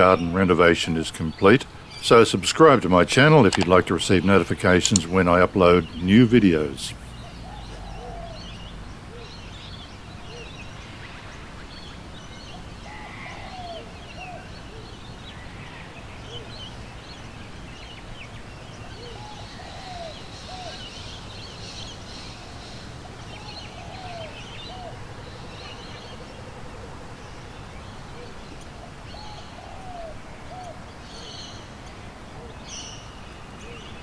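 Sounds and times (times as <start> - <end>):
small birds chirping: 0.0 - 34.0
low down-slurred bird call: 6.9 - 9.4, 12.8 - 16.6.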